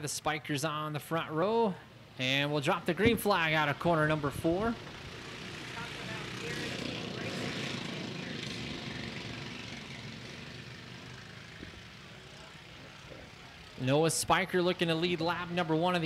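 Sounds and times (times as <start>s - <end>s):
race car engines roaring: 0.0s - 16.0s.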